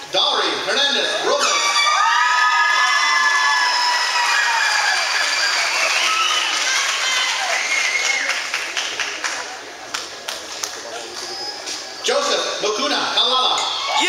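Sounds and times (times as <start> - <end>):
high whoops and shouts: 1.4 - 8.5
crowd cheering and applauding: 1.4 - 11.6.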